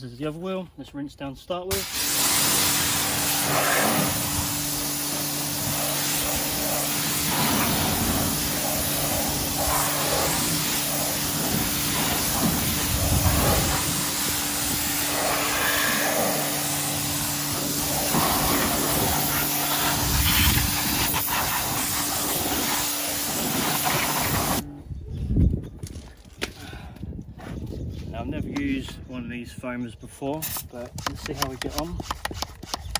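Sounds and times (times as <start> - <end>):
pressure washer spray hissing: 1.7 - 24.6
pressure washer machine hum: 1.7 - 24.7.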